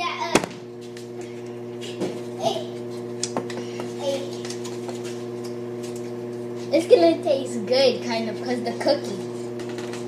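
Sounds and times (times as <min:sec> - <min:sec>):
kitchen appliance humming: 0:00.0 - 0:10.0.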